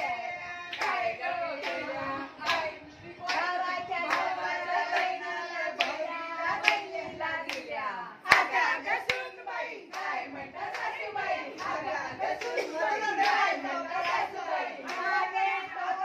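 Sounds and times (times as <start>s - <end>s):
women singing together: 0.0s - 16.0s
sharp hand claps: 8.3s - 8.5s.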